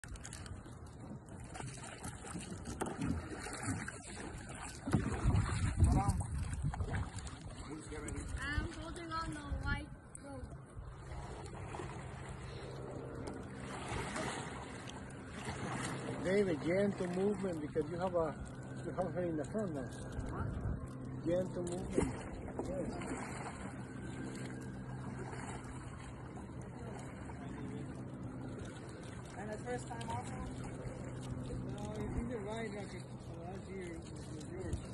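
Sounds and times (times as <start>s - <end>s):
kayak paddle splashing: 0.0s - 34.9s
steady low hum: 0.0s - 34.9s
wind buffeting microphone: 4.0s - 12.2s, 20.1s - 21.0s.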